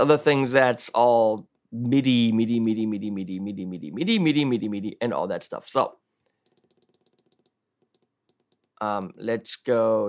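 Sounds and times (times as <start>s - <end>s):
faint rapid ticks: 6.3s - 8.8s.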